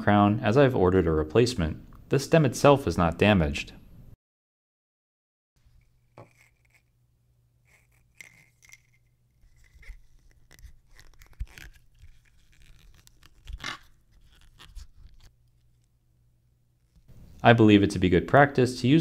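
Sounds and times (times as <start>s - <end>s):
plastic blister pack crinkling: 7.7s - 15.9s
plastic crackle: 8.1s - 15.9s.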